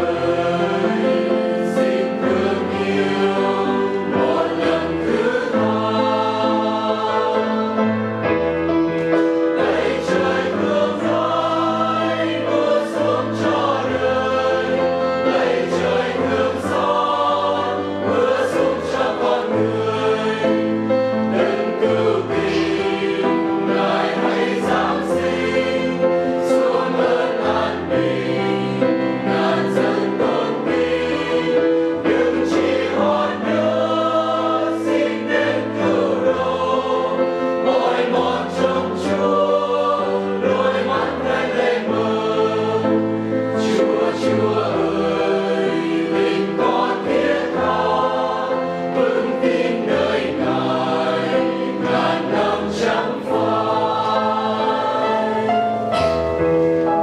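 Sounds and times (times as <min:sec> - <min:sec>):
mixed choir singing a hymn: 0:00.0 - 0:57.0.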